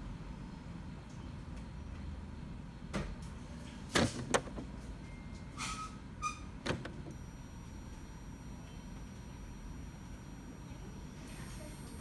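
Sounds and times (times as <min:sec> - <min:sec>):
faint high whine: 0:07.1 - 0:12.0
small motor whirring: 0:07.1 - 0:12.0.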